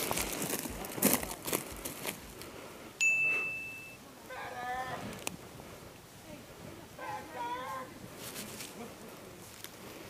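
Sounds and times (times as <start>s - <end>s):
footsteps crunching on dry leaves: 0.0s - 2.5s
bright high ding: 3.0s - 4.0s.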